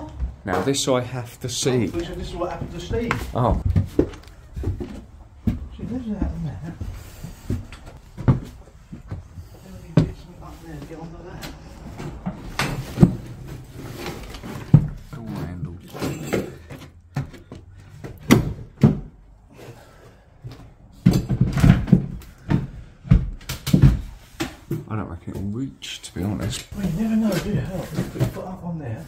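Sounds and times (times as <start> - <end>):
knocks and thumps in a room: 2.0 - 25.6.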